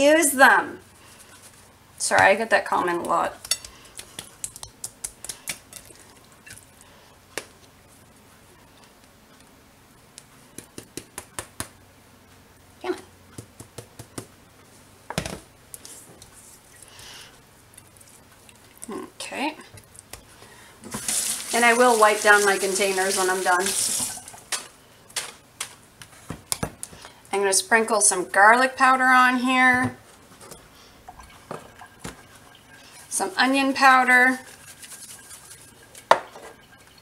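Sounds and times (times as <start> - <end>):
soft rustle: 0.8 - 1.8, 34.3 - 36.1.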